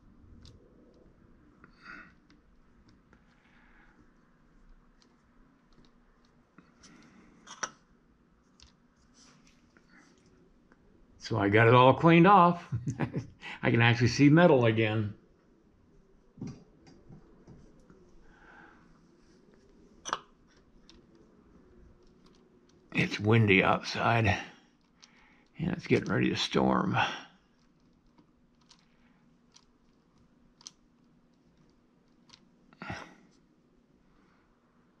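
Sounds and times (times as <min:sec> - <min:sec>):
faint clicks of handling clay: 0:00.0 - 0:10.9, 0:16.3 - 0:23.0, 0:24.5 - 0:26.2, 0:27.4 - 0:33.6
low room hum: 0:00.0 - 0:35.0.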